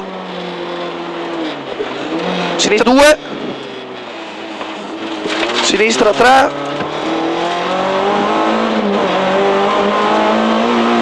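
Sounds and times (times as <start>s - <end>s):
car engine from inside cabin: 0.0s - 11.0s
road noise: 0.0s - 11.0s.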